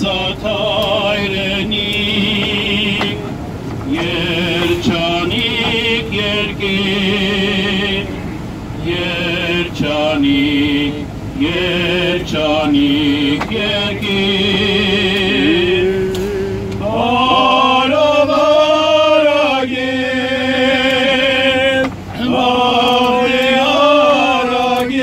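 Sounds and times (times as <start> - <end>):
men chanting a hymn: 0.0 - 25.0
vehicle driving hum: 0.0 - 25.0.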